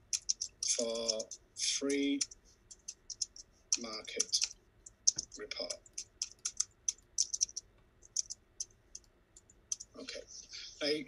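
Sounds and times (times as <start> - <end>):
computer keyboard keystrokes: 0.0 - 1.4, 2.2 - 9.9.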